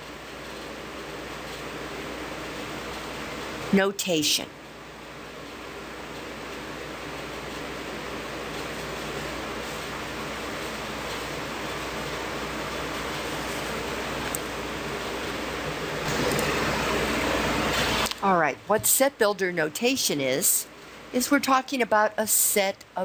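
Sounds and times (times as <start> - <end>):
steady background hiss: 0.0 - 23.0.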